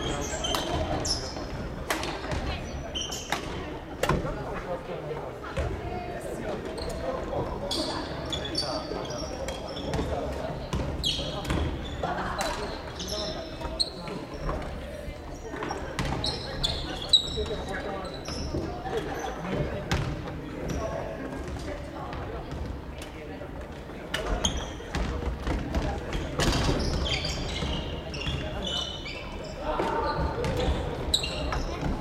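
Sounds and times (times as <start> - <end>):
murmur of voices: 0.0 - 32.0.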